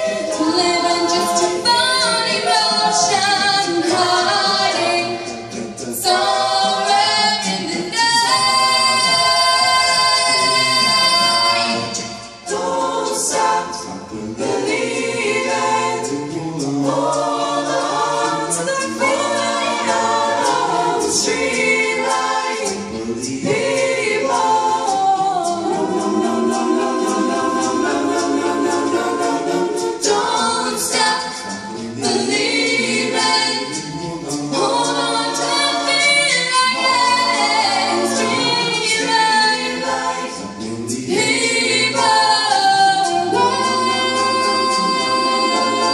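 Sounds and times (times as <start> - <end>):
a cappella ensemble singing: 0.0 - 45.9.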